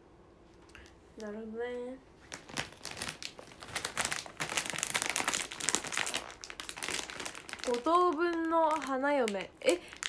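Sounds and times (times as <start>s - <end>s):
plastic packet crinkling: 2.2s - 10.0s.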